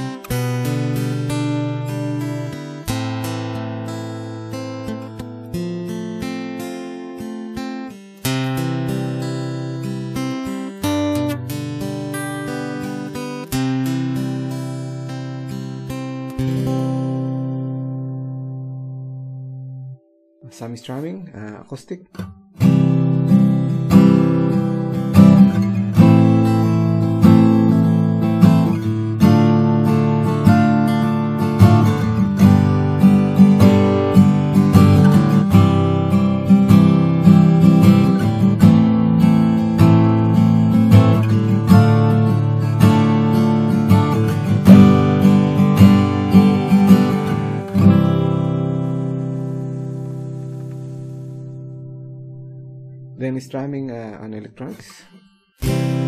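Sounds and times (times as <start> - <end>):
fingerstyle acoustic guitar: 0.0 - 21.1, 22.1 - 56.0.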